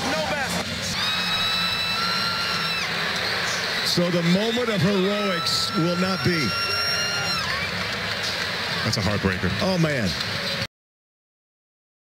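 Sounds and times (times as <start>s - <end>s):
arena crowd noise: 0.0s - 10.7s
television commentary: 3.2s - 10.7s.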